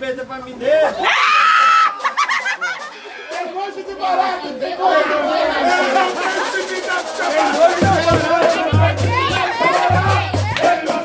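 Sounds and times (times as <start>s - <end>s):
samba hand percussion: 1.2s - 4.3s, 5.5s - 11.0s
group singing and talking: 1.9s - 11.0s
deep booming hand drum: 7.8s - 10.6s.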